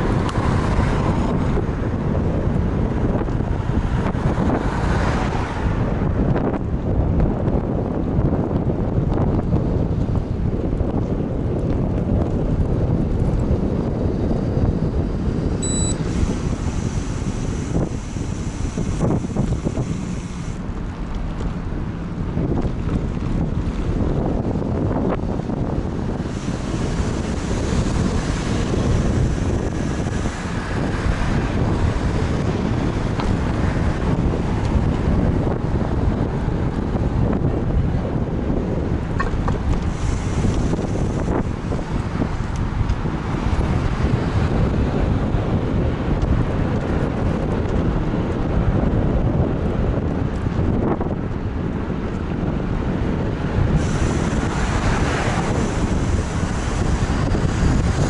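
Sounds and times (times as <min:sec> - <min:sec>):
wind rushing over microphone: 0:00.0 - 0:58.0.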